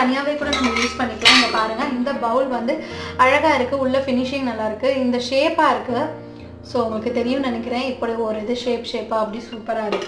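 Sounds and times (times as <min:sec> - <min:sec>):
woman speaking: 0:00.0 - 0:10.0
steel bowls clinking together: 0:00.4 - 0:01.9.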